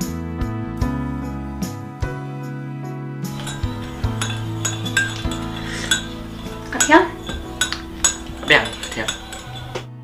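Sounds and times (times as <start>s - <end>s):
soft background music: 0.4s - 10.0s
teaspoon clinking in ceramic cup: 3.3s - 9.9s
spoon clatter: 3.3s - 10.0s.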